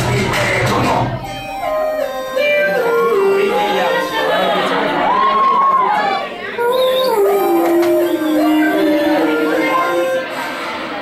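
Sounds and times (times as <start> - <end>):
voices holding sliding notes: 0.3 - 11.0
higher voice singing: 6.6 - 11.0.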